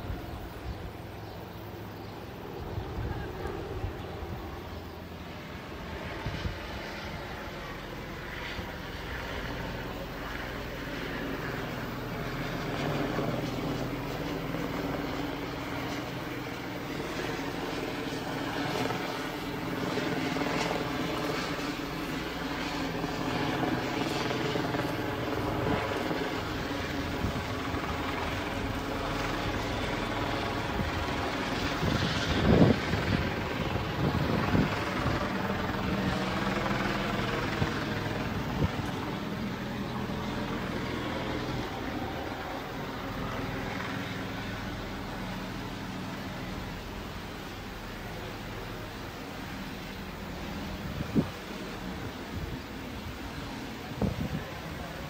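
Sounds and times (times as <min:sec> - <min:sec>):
helicopter rotor drone: 0:00.0 - 0:55.0.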